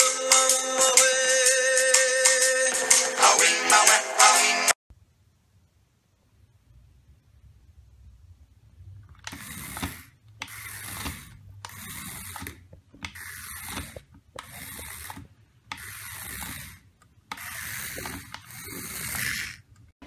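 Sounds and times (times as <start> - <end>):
toy gear mechanism whirring: 9.2 - 19.9.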